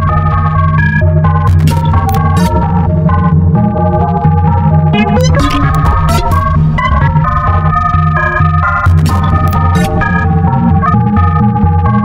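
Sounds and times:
organ-like keyboard chords: 0:01.6 - 0:11.6
heavy steady bass line: 0:01.7 - 0:11.6.

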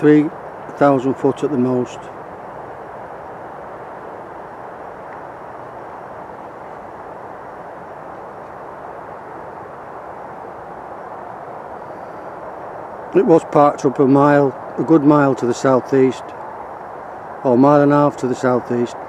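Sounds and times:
steady outdoor hiss: 0:00.0 - 0:19.0.

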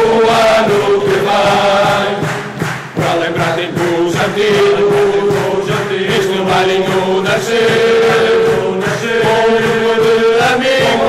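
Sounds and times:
men singing together: 0:00.0 - 0:11.0.

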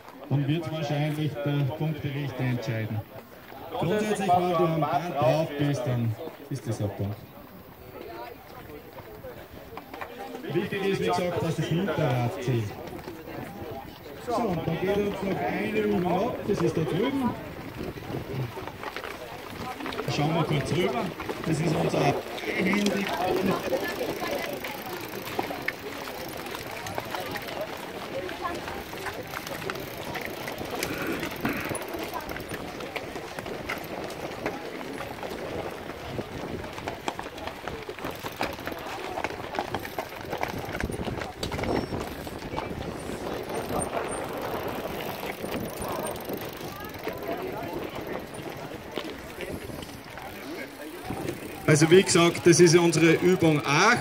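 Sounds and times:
footsteps on gravel path: 0:00.0 - 0:54.0
young people chattering: 0:00.0 - 0:54.0.

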